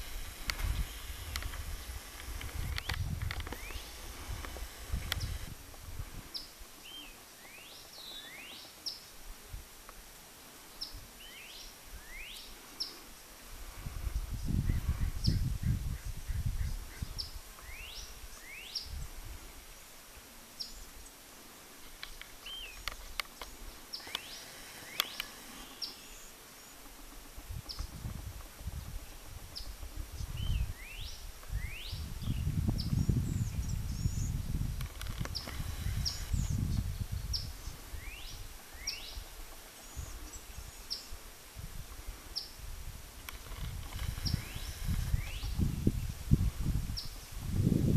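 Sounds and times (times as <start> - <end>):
songbirds calling: 0.0 - 9.2, 10.6 - 47.4.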